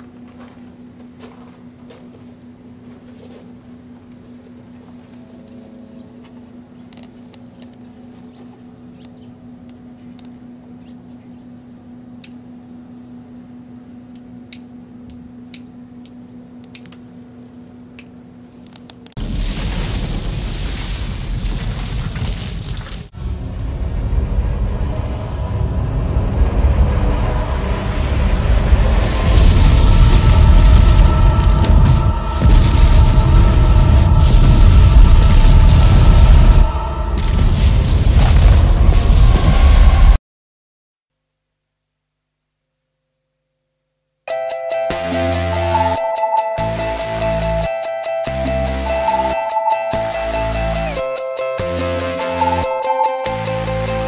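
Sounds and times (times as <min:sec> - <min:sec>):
steady low hum: 0:00.0 - 0:21.6, 0:23.0 - 0:40.2, 0:44.3 - 0:54.0
explosion rumbling: 0:19.2 - 0:40.2
sharp clicks: 0:46.0 - 0:54.0.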